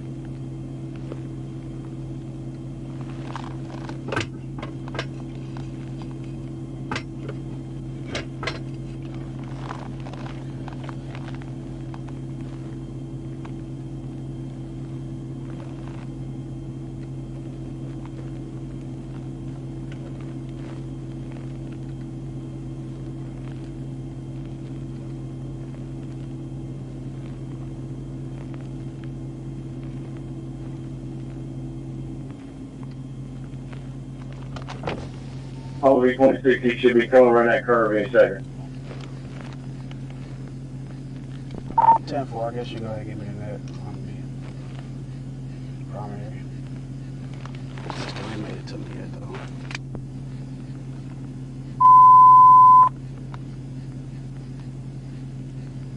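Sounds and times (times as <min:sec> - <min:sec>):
car engine idling hum: 0:00.0 - 0:55.9.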